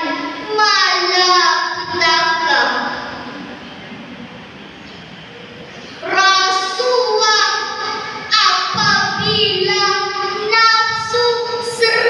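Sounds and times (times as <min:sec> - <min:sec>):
girl reciting into microphone: 0:00.0 - 0:03.5, 0:05.7 - 0:12.0.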